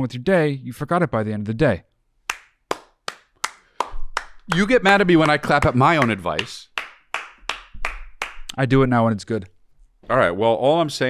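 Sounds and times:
person clapping slowly: 2.3s - 8.6s.

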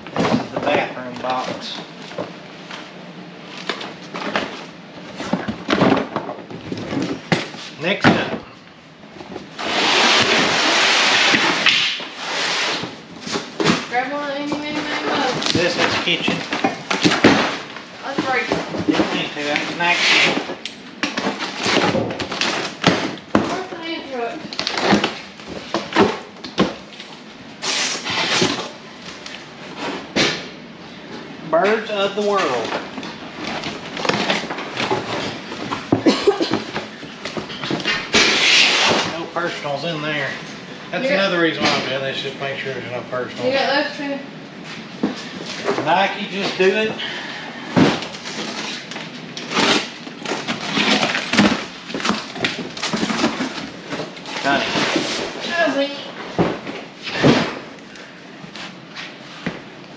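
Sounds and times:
rummaging in cardboard boxes: 0.0s - 41.8s, 44.6s - 59.9s
cardboard scraping: 9.2s - 20.5s, 36.6s - 39.3s, 47.8s - 57.7s.

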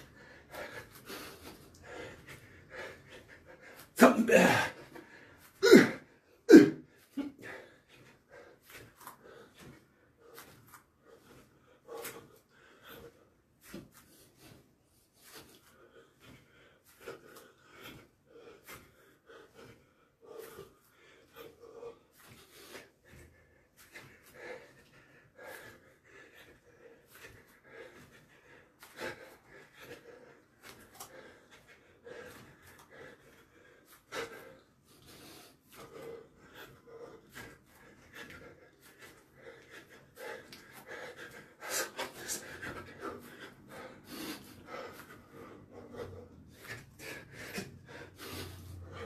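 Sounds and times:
hard breathing: 0.0s - 49.0s.

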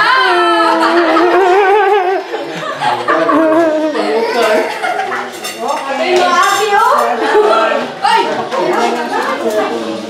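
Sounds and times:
cutlery clinking on plates and trays: 4.2s - 10.0s.

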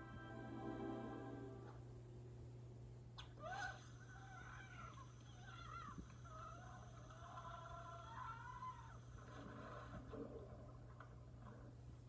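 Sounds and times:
film soundtrack from television: 0.0s - 12.0s
steady low hum: 0.0s - 12.0s.

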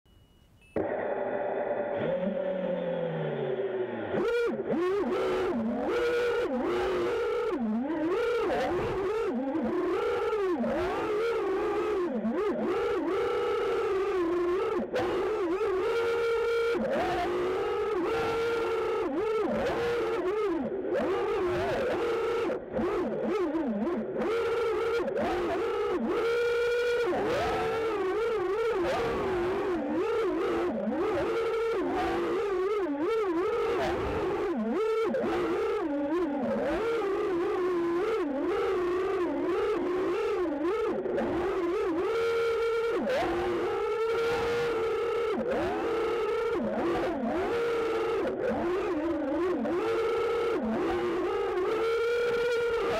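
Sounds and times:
quadcopter motors whining: 0.8s - 52.9s.

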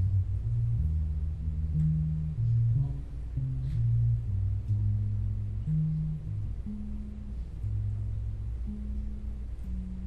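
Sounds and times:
electric bass guitar solo: 0.0s - 10.0s.

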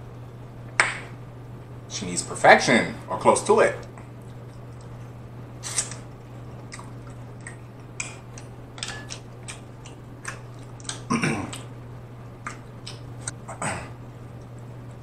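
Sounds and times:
steady low hum: 0.0s - 15.0s
close-miked eating and chewing: 5.7s - 13.6s.

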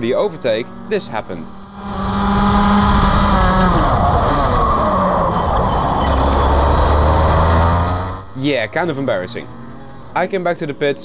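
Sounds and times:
kart engine at racing speed: 0.0s - 10.7s.

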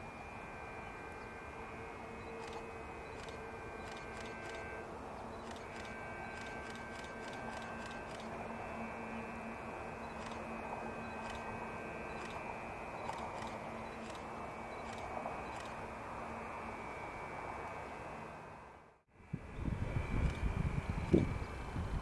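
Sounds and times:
low hum: 0.0s - 22.0s.

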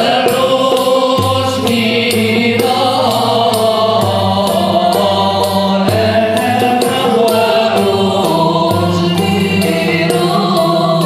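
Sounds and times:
cello: 0.0s - 11.0s
men singing together: 0.0s - 11.0s
sharp percussion strokes: 0.0s - 11.0s.

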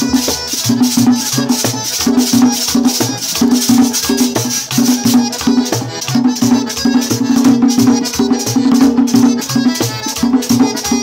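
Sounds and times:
button accordion playing: 0.0s - 11.0s
hand drum beating: 0.0s - 11.0s
metal scraper rhythm: 0.0s - 11.0s.

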